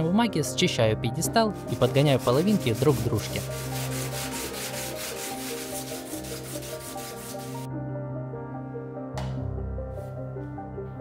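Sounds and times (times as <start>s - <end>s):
sanding on coarse sandpaper: 1.6s - 7.7s.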